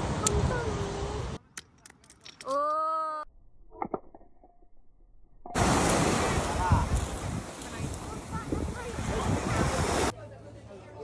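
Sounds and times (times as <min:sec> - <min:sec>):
small stones clicking: 0:01.4 - 0:02.8
waves washing onto beach: 0:05.6 - 0:10.1
wind on microphone: 0:05.6 - 0:10.1.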